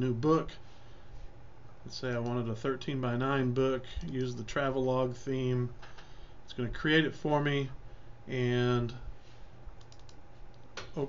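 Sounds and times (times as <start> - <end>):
faint low hum: 0.0 - 11.0
computer clicks: 9.8 - 11.0.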